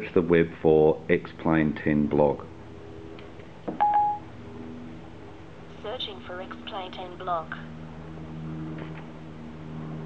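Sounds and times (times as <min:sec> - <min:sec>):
faint steady hum: 0:00.0 - 0:10.0
short electronic beep: 0:03.8 - 0:04.2.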